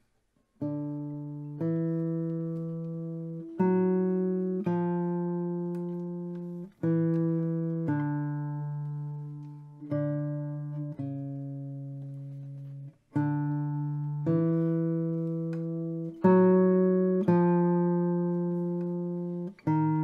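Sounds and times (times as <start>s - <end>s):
classical guitar chords: 0.6s - 20.0s.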